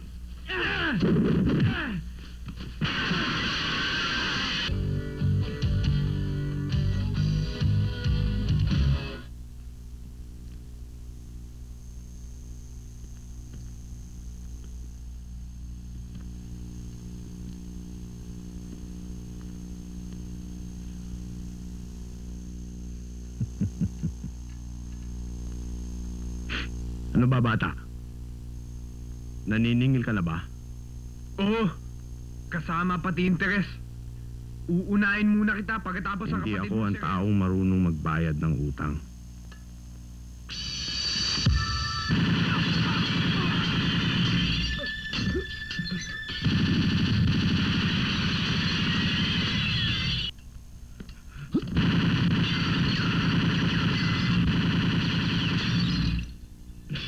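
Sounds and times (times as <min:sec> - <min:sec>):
electrical mains hum: 0:00.0 - 0:57.0.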